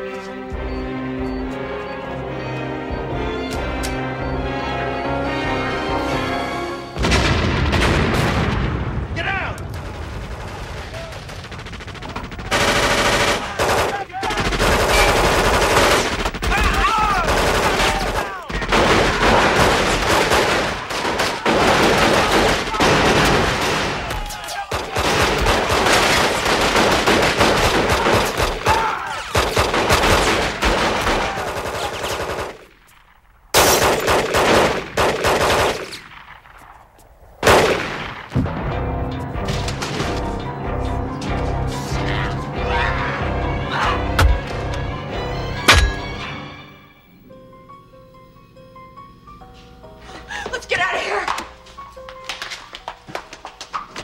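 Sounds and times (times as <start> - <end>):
rapid gunfire: 9.8 - 32.7, 33.6 - 36.4, 37.4 - 38.3.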